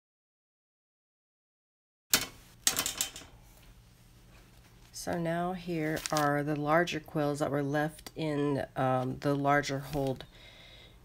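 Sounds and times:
faint room noise: 0:02.1 - 0:11.0.

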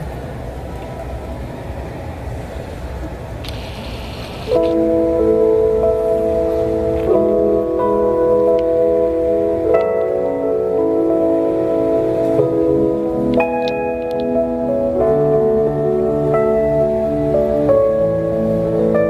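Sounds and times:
live venue room noise: 0:00.0 - 0:19.0
keyboard playing sustained chords: 0:03.6 - 0:19.0.

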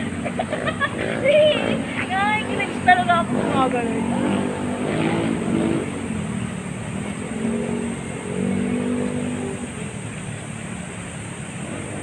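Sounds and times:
street noise: 0:00.0 - 0:12.0
vehicle engine running: 0:00.0 - 0:12.0.

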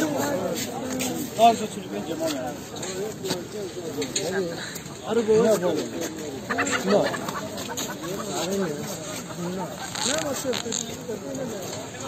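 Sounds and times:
men's voices: 0:00.0 - 0:12.0
chicken clucking: 0:06.5 - 0:09.4.

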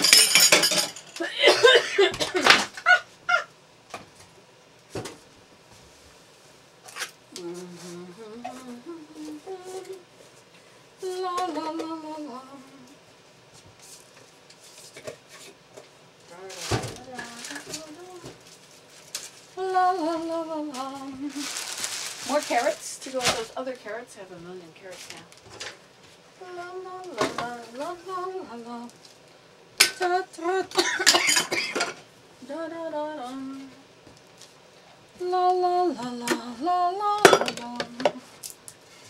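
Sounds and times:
woman humming: 0:07.3 - 0:10.0, 0:11.0 - 0:13.0, 0:16.3 - 0:18.4.

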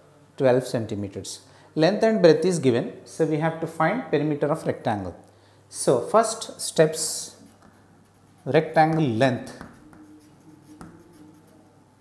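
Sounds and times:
chalk scratching on blackboard: 0:07.0 - 0:11.7
chalk tapping on blackboard: 0:07.3 - 0:11.6.

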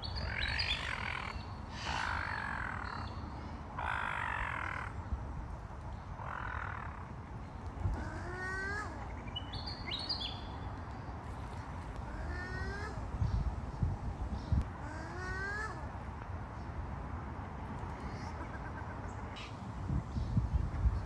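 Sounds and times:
harsh bird calls: 0:00.0 - 0:05.0.

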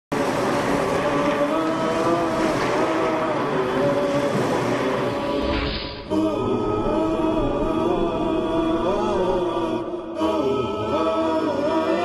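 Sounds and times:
waves rushing: 0:00.2 - 0:09.6.

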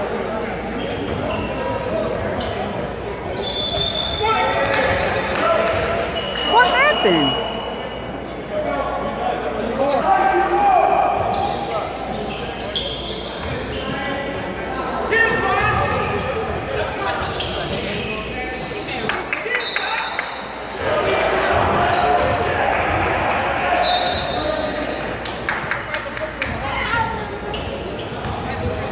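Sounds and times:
shoe squeaks on gym floor: 0:00.2 - 0:05.3, 0:09.8 - 0:10.1, 0:11.0 - 0:20.0, 0:23.0 - 0:28.9
people calling out: 0:06.4 - 0:07.4.

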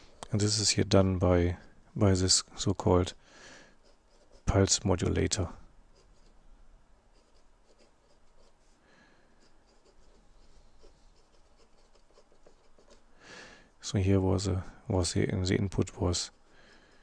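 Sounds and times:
marker scratching on paper: 0:03.8 - 0:04.8, 0:07.1 - 0:08.6, 0:09.4 - 0:13.0.

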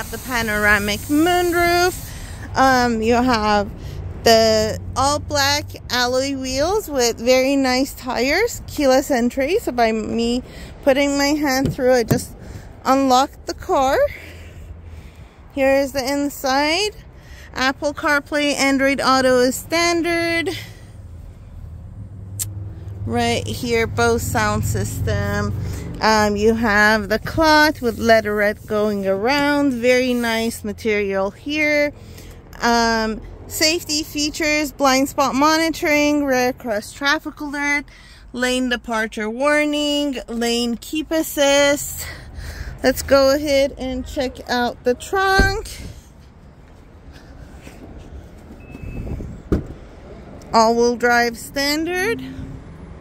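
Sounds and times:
low rumble in car cabin: 0:00.0 - 0:14.1
wind rumble: 0:47.8 - 0:50.4
faint electronic beep: 0:48.6 - 0:49.1.

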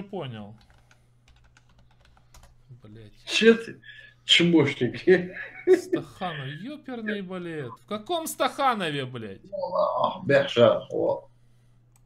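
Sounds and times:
faint keyboard typing: 0:00.4 - 0:02.7.

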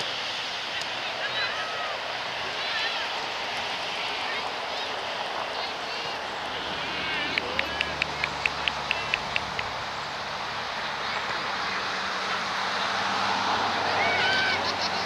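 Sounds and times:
distant voices calling: 0:00.0 - 0:15.0.

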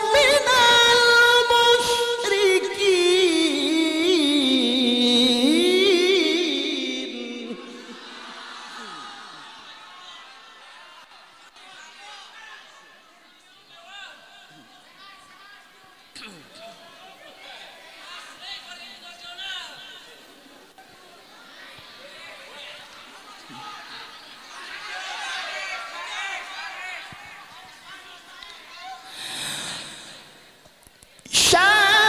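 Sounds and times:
person reciting: 0:00.0 - 0:08.1, 0:31.2 - 0:32.0
people talking in background: 0:03.8 - 0:31.4
person breathing in deeply: 0:29.1 - 0:30.5.

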